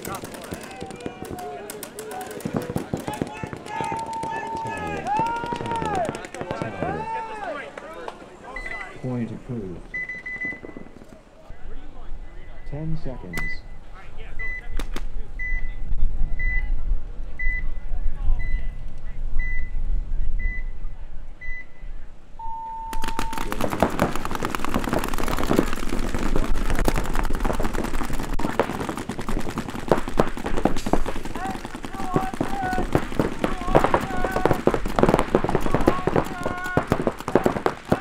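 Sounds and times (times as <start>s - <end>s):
paintball markers firing: 0.0s - 7.0s, 22.9s - 38.0s.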